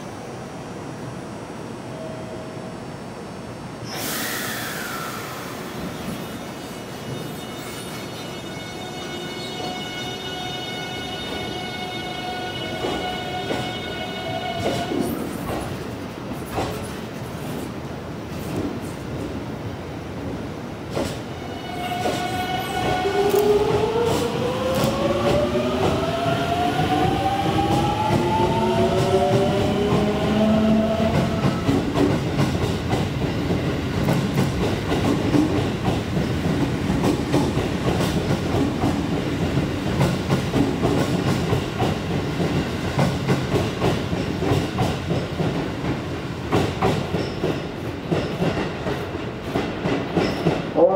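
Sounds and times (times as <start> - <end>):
train wheels clacking over rail joints: 34.0 - 50.7.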